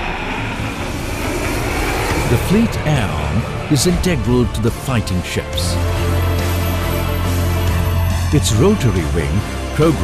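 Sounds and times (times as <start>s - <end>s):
aircraft engine rush: 0.0s - 10.0s.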